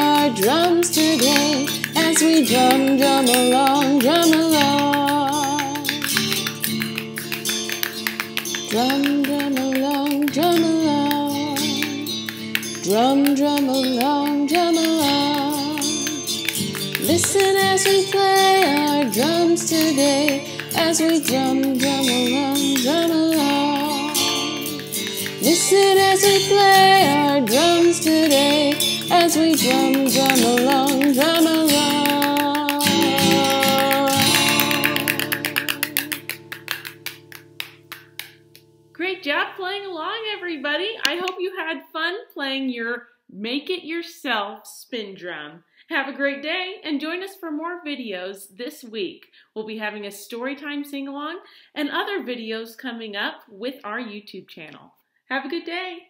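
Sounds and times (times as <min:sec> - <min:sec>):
guitar accompaniment: 0:00.0 - 0:41.4.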